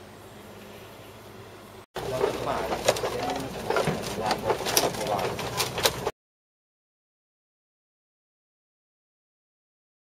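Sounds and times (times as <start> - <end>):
busy background noise: 2.0 - 6.1
footsteps on bamboo pier and boats: 2.0 - 6.1.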